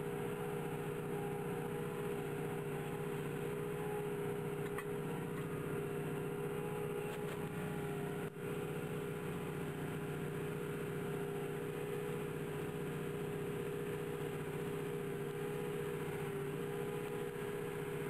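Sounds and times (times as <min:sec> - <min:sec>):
tractor engine running under load: 0:00.0 - 0:18.0.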